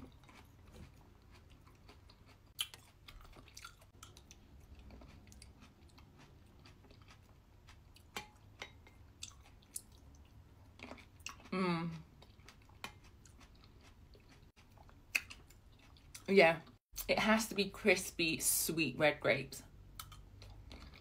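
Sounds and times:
chewing mouth sounds: 0:00.0 - 0:16.8.

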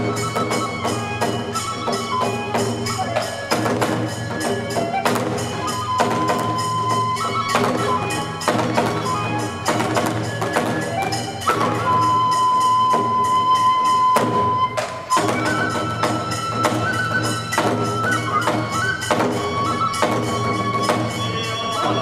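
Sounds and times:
bamboo flute long high notes: 0:00.0 - 0:22.0.

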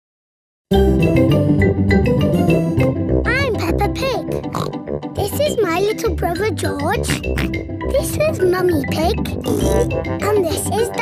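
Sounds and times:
bright children's theme music: 0:00.7 - 0:11.0
girl speaking: 0:03.3 - 0:04.4, 0:05.2 - 0:07.3, 0:07.9 - 0:11.0
cartoon pig oinking: 0:03.3 - 0:05.6, 0:06.2 - 0:08.4, 0:09.1 - 0:11.0.

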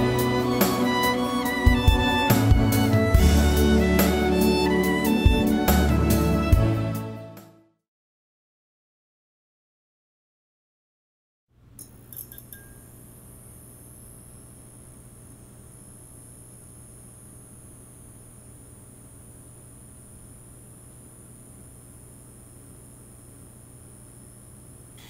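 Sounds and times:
neon sign electrical buzz: 0:00.0 - 0:06.1, 0:11.7 - 0:25.0.

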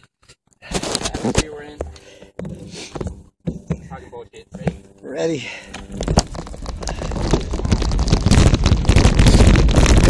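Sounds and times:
bike tyres on dirt: 0:05.4 - 0:10.0
bike rattling over bumps: 0:05.8 - 0:10.0
wind rumbling on microphone: 0:06.3 - 0:10.0.

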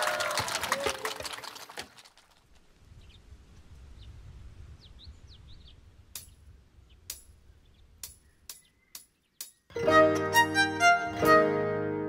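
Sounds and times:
audience cheering: 0:00.0 - 0:02.1
audience clapping: 0:00.0 - 0:02.5.

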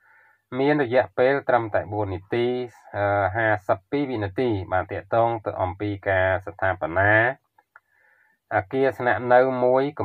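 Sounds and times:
man narrating: 0:00.5 - 0:07.4, 0:08.5 - 0:10.0.

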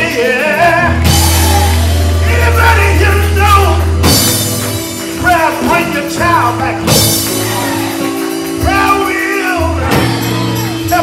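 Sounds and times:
man singing: 0:00.0 - 0:04.0, 0:05.2 - 0:08.0, 0:08.6 - 0:11.0
church band music: 0:00.0 - 0:11.0.

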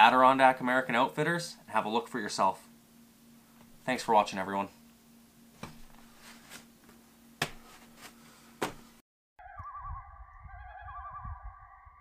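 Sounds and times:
echoing synth tones: 0:09.4 - 0:12.0
low pulsing rumble: 0:09.4 - 0:12.0.

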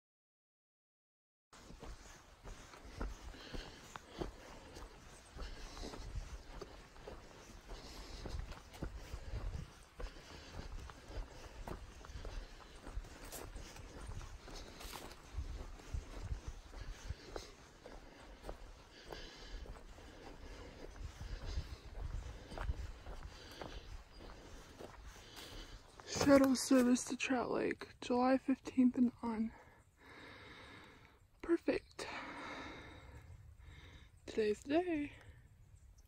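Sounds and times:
footsteps on dirt trail: 0:01.6 - 0:35.5.

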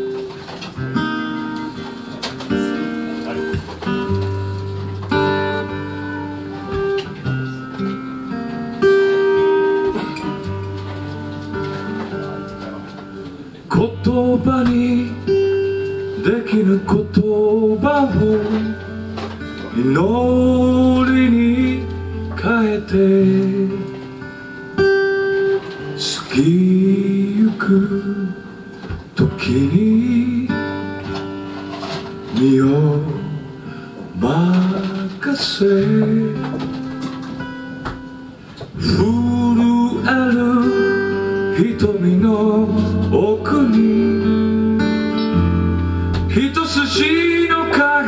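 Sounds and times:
acoustic guitars strumming: 0:00.0 - 0:48.0
person singing: 0:09.2 - 0:24.1, 0:25.7 - 0:28.5, 0:29.2 - 0:37.1, 0:38.8 - 0:48.0.

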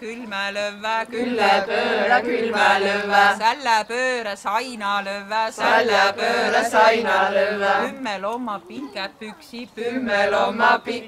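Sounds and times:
group of voices singing: 0:00.0 - 0:03.6, 0:05.5 - 0:08.2, 0:09.6 - 0:11.0
lead voice singing: 0:00.0 - 0:04.0, 0:05.1 - 0:08.2, 0:09.5 - 0:11.0.

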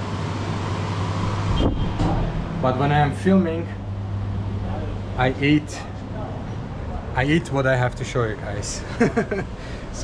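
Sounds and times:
air conditioning hum and hiss: 0:00.0 - 0:10.0.

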